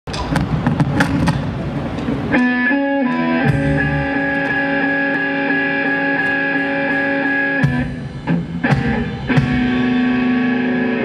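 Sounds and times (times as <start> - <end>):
drum hits: 0.1 - 1.7, 3.1 - 4.8, 6.1 - 10.2
blues band playing: 0.1 - 11.0
sustained electric guitar notes: 2.2 - 11.0.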